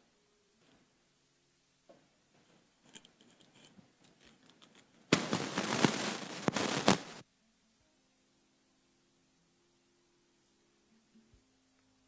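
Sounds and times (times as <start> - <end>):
microphone handling noise: 5.1 - 7.2.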